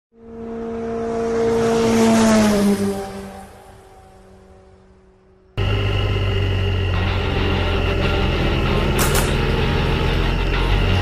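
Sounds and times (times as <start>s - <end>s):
motor vehicle passing by: 0.2s - 11.0s.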